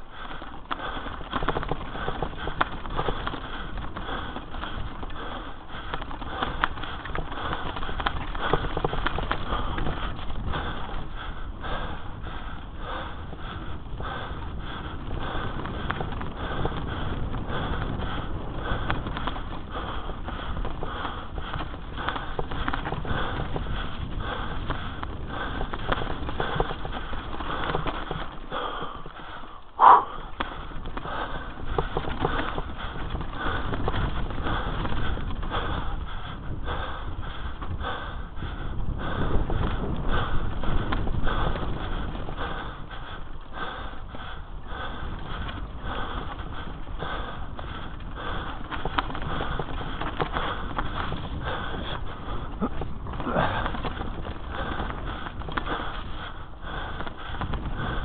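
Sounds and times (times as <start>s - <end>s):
bike knocking and rattling: 0.0s - 58.0s
bike tyres rumbling on dirt: 0.0s - 58.0s.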